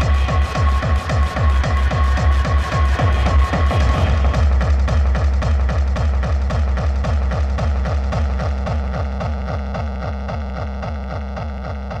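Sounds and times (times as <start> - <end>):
hardcore techno kick drum: 0.0 - 12.0
noisy pulsing synth: 0.0 - 12.0.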